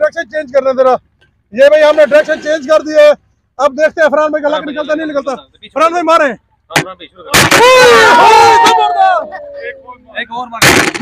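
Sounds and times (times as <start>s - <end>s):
men shouting excitedly: 7.4s - 10.1s.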